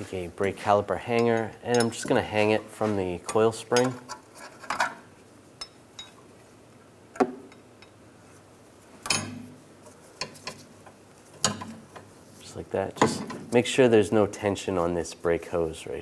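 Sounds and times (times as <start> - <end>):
metal clicks and knocks: 1.1 - 2.2, 10.2 - 12.1.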